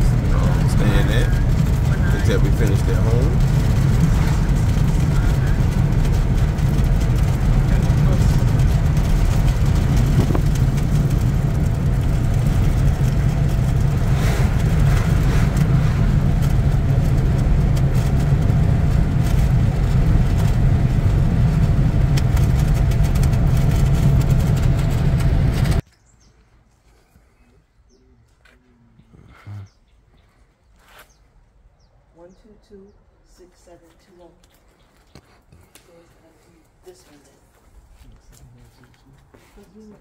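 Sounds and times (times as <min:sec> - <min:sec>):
car cabin road noise: 0:00.0 - 0:25.8.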